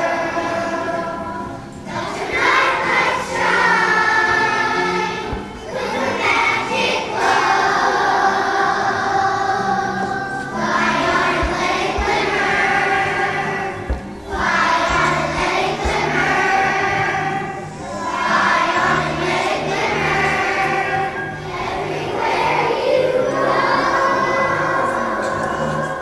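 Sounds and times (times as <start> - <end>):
children's choir singing: 0.0 - 26.0
accompaniment with repeating bass line: 10.6 - 17.1.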